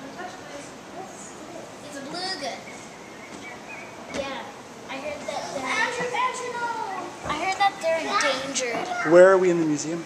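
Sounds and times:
girls chattering and calling out: 0.0s - 9.6s.

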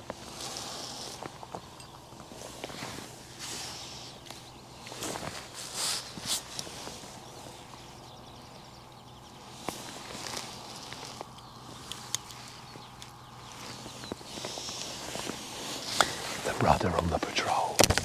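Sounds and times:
faint rain hiss: 0.0s - 17.8s
soft rustling of handling: 9.4s - 18.0s
man's voice: 16.4s - 17.8s.

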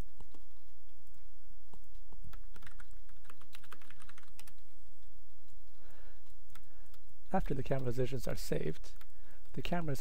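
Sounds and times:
low electrical hum: 0.0s - 10.0s
computer keyboard typing: 0.2s - 5.1s, 6.2s - 7.9s.

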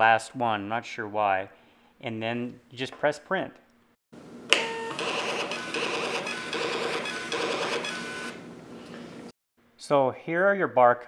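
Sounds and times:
label printer whirring: 4.9s - 8.4s.

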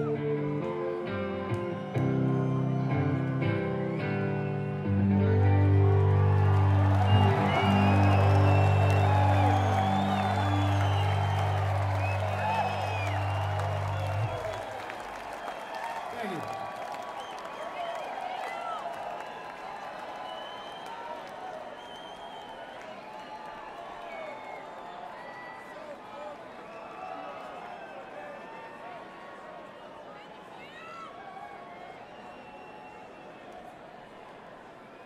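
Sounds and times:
crowd cheering and applauding: 0.0s - 35.0s.

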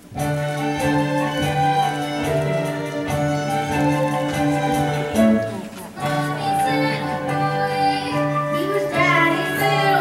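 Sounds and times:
instrumental accompaniment: 0.0s - 10.0s
person singing: 6.0s - 10.0s.

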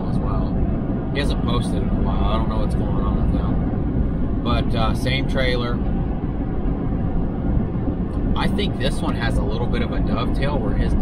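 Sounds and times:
road rumble inside vehicle cab: 0.0s - 11.0s.

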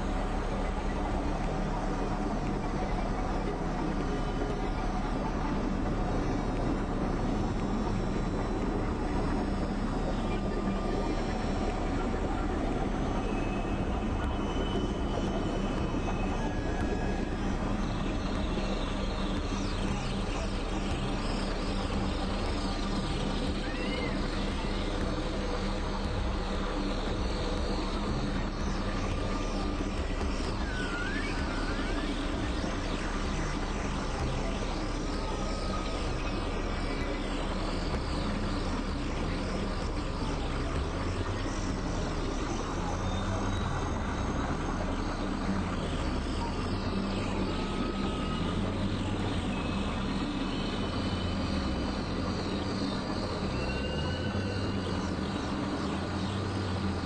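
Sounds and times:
synthesizer drone: 0.0s - 57.0s.

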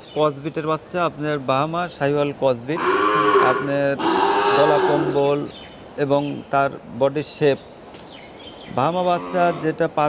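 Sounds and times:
cow mooing: 2.8s - 5.2s, 9.1s - 9.7s.

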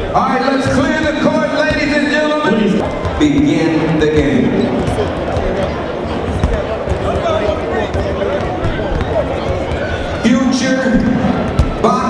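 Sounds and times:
crowd chatter: 0.0s - 12.0s
basketballs bouncing on hardwood: 0.5s - 2.2s, 2.8s - 12.0s.

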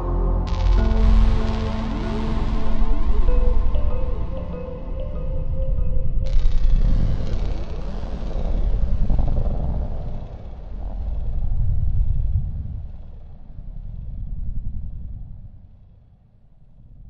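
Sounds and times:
deep rumbling ambient electronic music: 0.0s - 16.1s.

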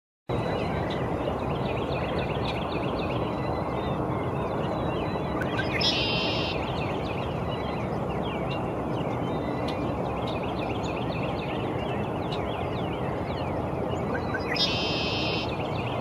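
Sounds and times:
steady low background noise: 0.3s - 16.0s
blackbird song with buzzy trill: 0.4s - 16.0s
songbirds chirping: 0.4s - 16.0s.

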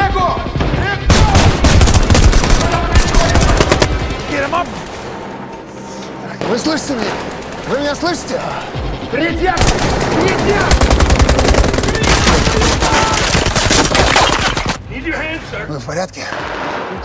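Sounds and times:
rapid automatic gunfire: 1.1s - 4.1s, 9.6s - 14.8s.

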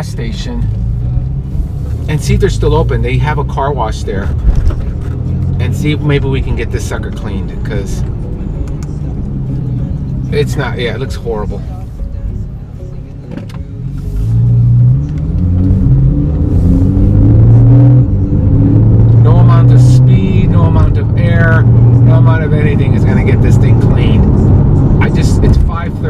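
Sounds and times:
car engine accelerating: 0.0s - 26.0s.

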